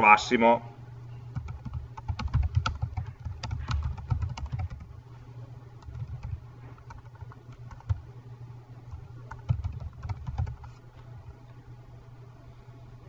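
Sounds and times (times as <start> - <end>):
low steady hum: 0.0 - 13.0
computer keyboard typing: 1.4 - 5.0, 5.8 - 8.0, 8.9 - 10.7.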